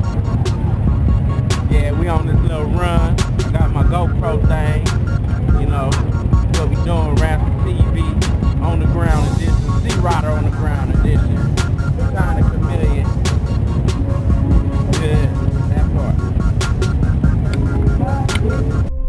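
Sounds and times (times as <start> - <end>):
motorcycle engines rumbling: 0.0 - 18.9
person speaking: 0.0 - 18.9
music: 0.0 - 19.0.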